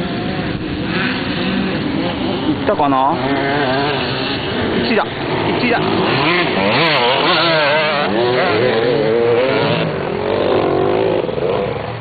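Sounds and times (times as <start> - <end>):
dirt bike engines revving: 0.0 - 12.0.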